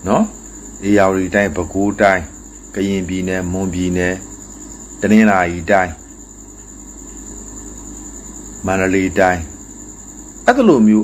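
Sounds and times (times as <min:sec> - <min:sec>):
man speaking: 0:00.0 - 0:04.3, 0:05.0 - 0:06.0, 0:08.6 - 0:09.6, 0:10.5 - 0:11.0.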